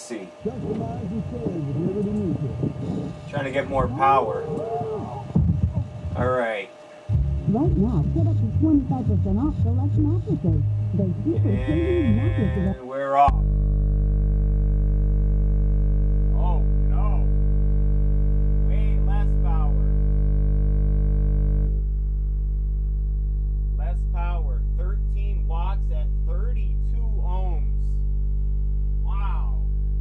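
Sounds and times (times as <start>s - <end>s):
subwoofer playing low test tone: 0.0s - 6.4s, 7.1s - 30.0s.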